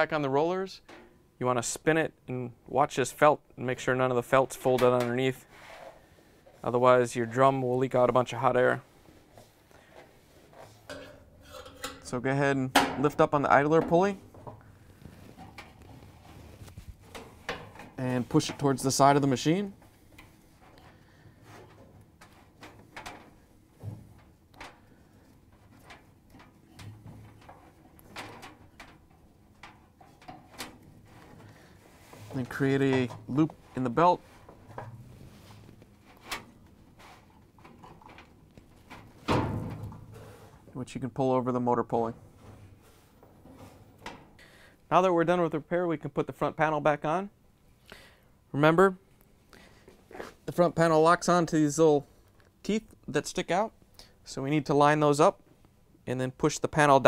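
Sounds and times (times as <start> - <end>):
soft handling noise: 4.5 - 44.4
clunk and rattle: 17.0 - 18.6, 20.1 - 31.6, 36.1 - 40.4.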